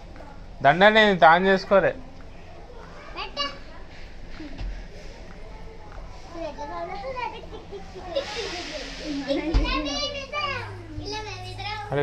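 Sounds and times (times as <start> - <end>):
children chattering and calling: 1.6 - 12.0
short hiss: 8.2 - 9.4.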